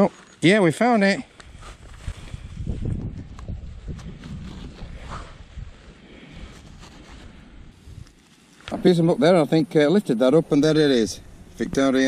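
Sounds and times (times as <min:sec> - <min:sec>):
gardening gloves rubbing: 0:01.3 - 0:09.2
wind rumble on microphone: 0:01.5 - 0:08.9.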